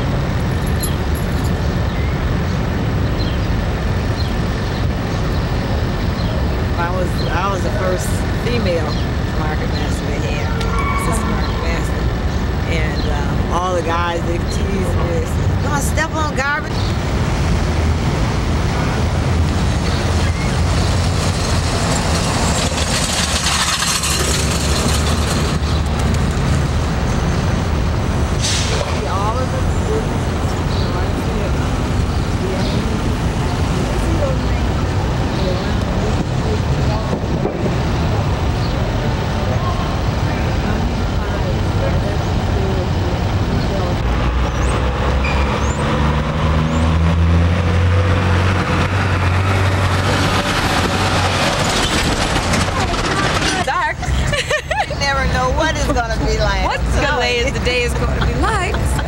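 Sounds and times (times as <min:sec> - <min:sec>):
traffic noise: 0:00.0 - 0:59.0
truck engine passing: 0:05.4 - 0:59.0.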